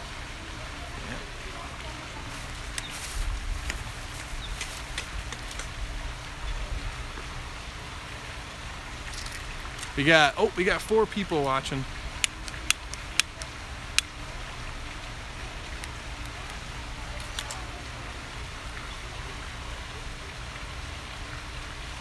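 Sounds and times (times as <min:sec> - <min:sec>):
outdoor background hiss: 0:00.0 - 0:22.0
camera handling clicks: 0:12.2 - 0:14.1, 0:17.2 - 0:17.6.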